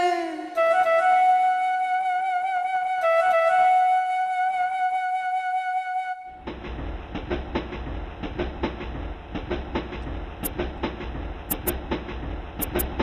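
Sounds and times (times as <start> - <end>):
electric train rumbling: 6.4 - 13.0
wheels clacking over rail joints: 6.4 - 13.0
sharp high clicks: 11.5 - 11.7, 12.6 - 12.9.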